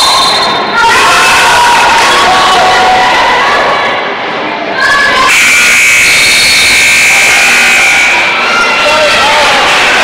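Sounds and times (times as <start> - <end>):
crowd noise: 0.0 - 10.0
scoreboard buzzer high tone: 5.3 - 8.7.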